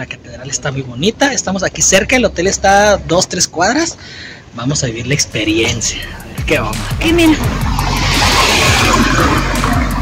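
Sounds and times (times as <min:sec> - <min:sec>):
car passing by: 0:07.4 - 0:10.0.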